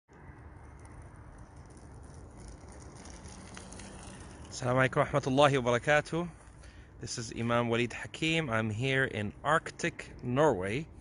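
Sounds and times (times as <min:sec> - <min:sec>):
outdoor background rumble: 0:00.1 - 0:11.0.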